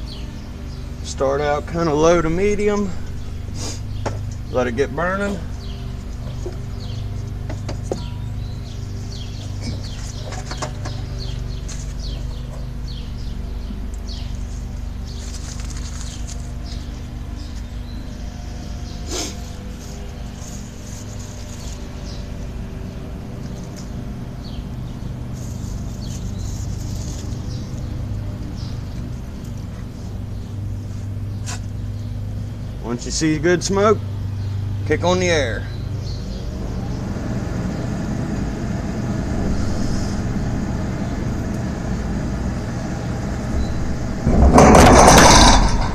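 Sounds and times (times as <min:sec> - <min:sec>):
forge air blower humming: 0:00.0 - 0:45.9.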